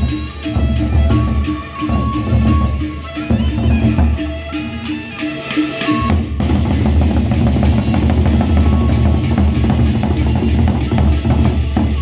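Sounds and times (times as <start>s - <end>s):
large drums beaten fast: 0.0s - 4.3s, 5.9s - 12.0s.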